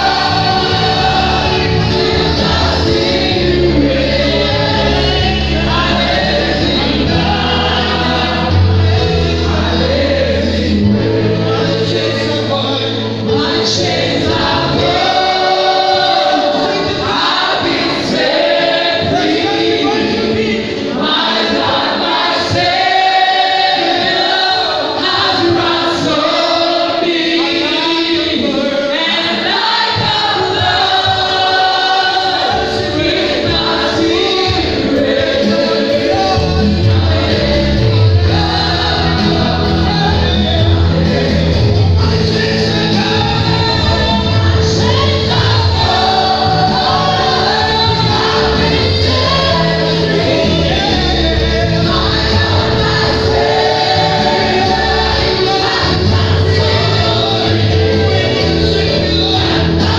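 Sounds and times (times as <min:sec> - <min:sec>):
amplified band: 0:00.0 - 0:59.9
gospel singing: 0:00.0 - 0:59.9.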